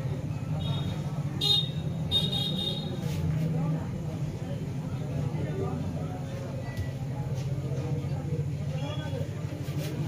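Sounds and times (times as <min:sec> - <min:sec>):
low traffic hum: 0:00.0 - 0:10.0
vehicle horn toots: 0:00.6 - 0:03.0.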